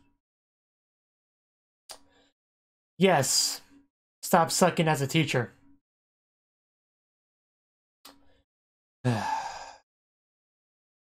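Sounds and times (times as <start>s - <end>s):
man sighing: 9.1s - 9.8s.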